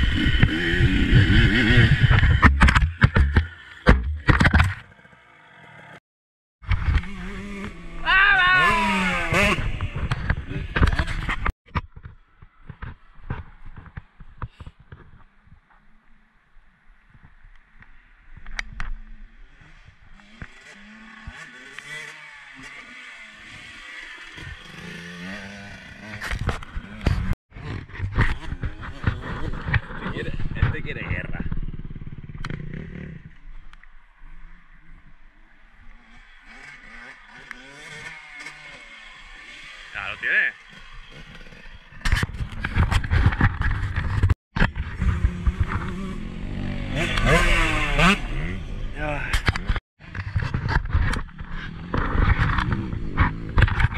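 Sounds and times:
motocross bike engine revving: 0:00.0 - 0:06.0, 0:06.8 - 0:11.5, 0:19.0 - 0:30.5, 0:31.2 - 0:33.5, 0:34.4 - 0:53.9.

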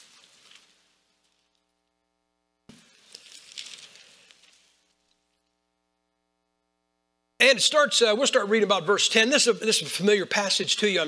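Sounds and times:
paper pages rustling: 0:00.0 - 0:01.6, 0:02.7 - 0:05.3.

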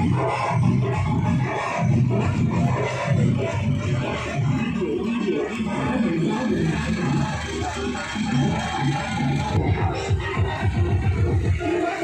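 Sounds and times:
loud music with heavy beat: 0:00.0 - 0:12.0.

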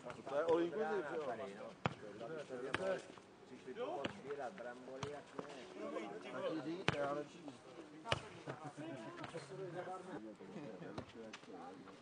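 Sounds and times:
men talking: 0:00.0 - 0:12.0.

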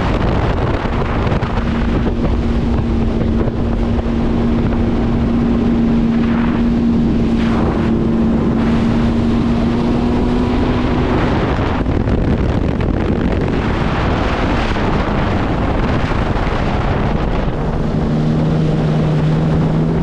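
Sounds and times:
personal watercraft engine drone: 0:00.0 - 0:20.0
wind buffeting microphone: 0:00.0 - 0:20.0.

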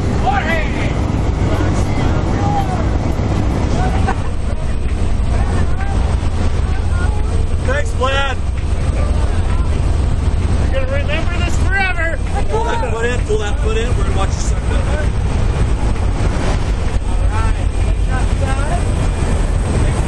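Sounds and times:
airplane engine and propeller drone: 0:00.0 - 0:20.0
faint voices: 0:00.0 - 0:20.0.

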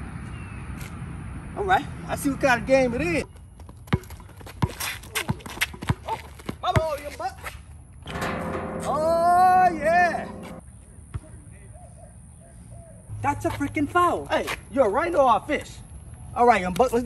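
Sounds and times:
basketball bouncing on concrete: 0:03.6 - 0:07.0.

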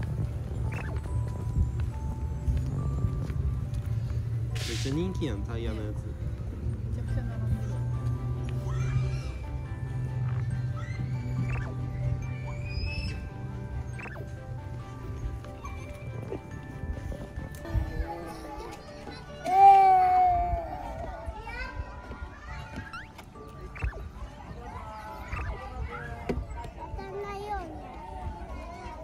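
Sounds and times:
background music: 0:00.0 - 0:29.0
children's voices: 0:17.5 - 0:29.0.

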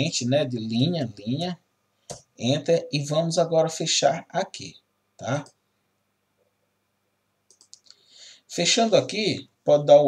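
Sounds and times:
faint mouse clicks: 0:02.0 - 0:02.3, 0:07.5 - 0:08.1.

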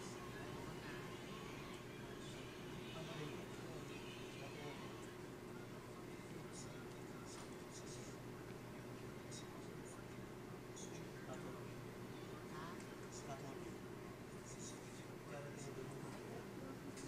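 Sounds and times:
faint indistinct voices: 0:00.0 - 0:17.0
low office hum: 0:00.0 - 0:17.0.

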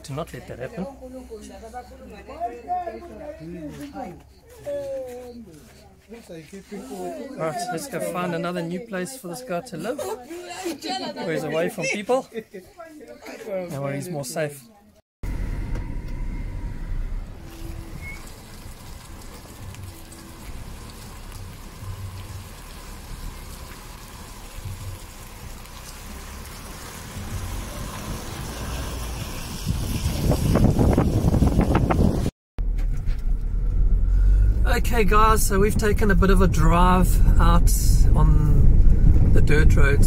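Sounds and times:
car driving on dirt road: 0:15.2 - 0:40.0
outdoor low rumble: 0:15.2 - 0:40.0.

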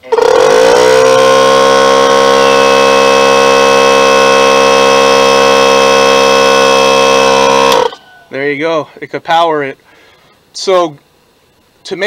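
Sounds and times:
air compressor running: 0:00.0 - 0:08.0.

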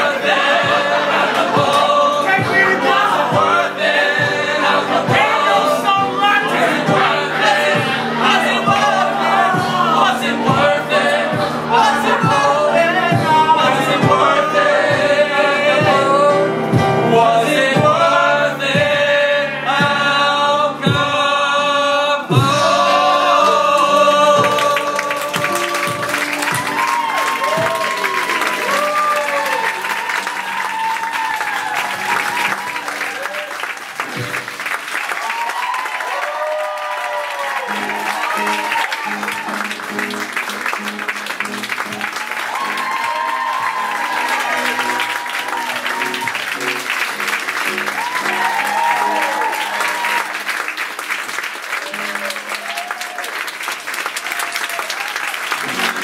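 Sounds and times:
audience applauding and cheering: 0:00.0 - 0:16.8, 0:22.3 - 0:56.0.

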